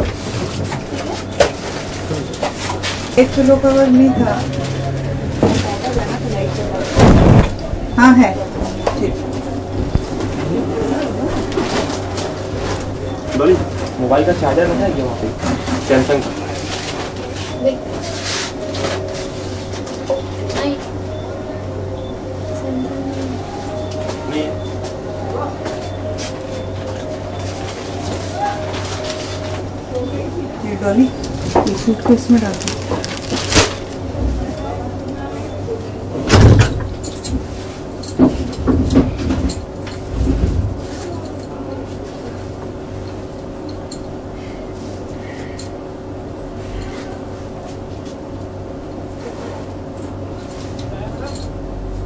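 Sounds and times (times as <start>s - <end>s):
low hum: 1.7s - 47.7s
sudden bang: 7.0s - 7.6s.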